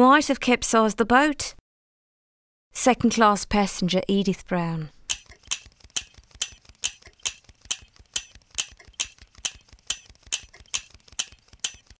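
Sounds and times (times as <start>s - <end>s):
clock ticking: 5.1s - 12.0s.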